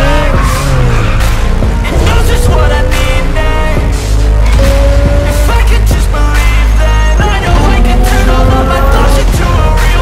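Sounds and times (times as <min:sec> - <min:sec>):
loud music with a beat: 0:00.0 - 0:10.0
sports car engine revving: 0:00.0 - 0:10.0.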